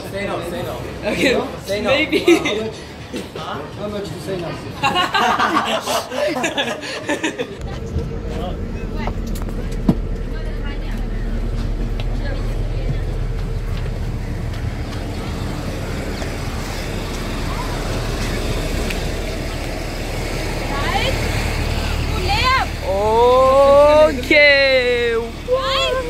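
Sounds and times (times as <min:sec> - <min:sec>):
road traffic rumble: 0:00.0 - 0:26.0
rising tones: 0:07.5 - 0:26.0.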